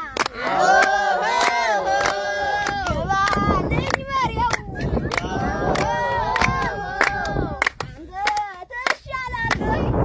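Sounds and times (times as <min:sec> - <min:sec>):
rhythmic hand-clapping: 0:00.0 - 0:10.0
voices singing and chanting: 0:00.0 - 0:10.0.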